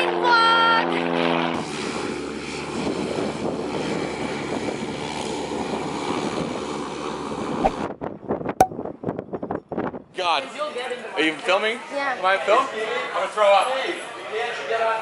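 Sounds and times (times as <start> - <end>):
turboprop engine and propeller drone: 0.0 - 7.9.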